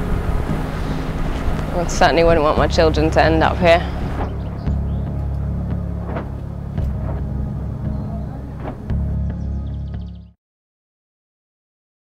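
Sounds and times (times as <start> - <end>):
distant voices: 0.0 - 9.8
low rumbling drone: 0.0 - 10.4.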